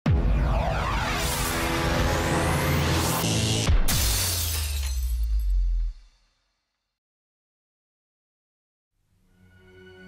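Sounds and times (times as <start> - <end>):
electronic pitch glides: 0.1 - 3.8
crash with glassy shatter: 3.8 - 6.4.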